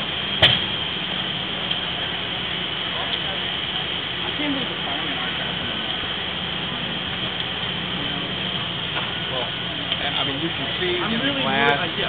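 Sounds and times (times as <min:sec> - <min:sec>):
faint voices talking: 0:01.1 - 0:12.0.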